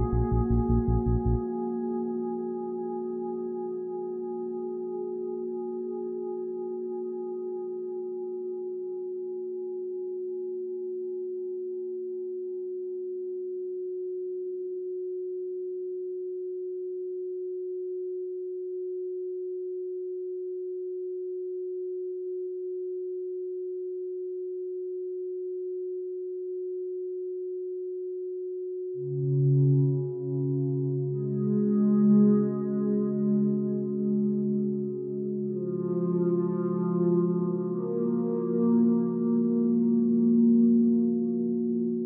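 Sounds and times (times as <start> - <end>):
lower tone: 0.0 - 12.4, 28.8 - 42.0
electronic sine tone: 0.0 - 42.0
faint higher tone: 0.0 - 42.0.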